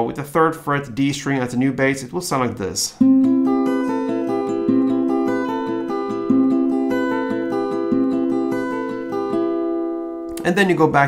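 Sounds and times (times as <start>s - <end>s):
acoustic guitar fingerpicked arpeggio: 3.0s - 10.8s.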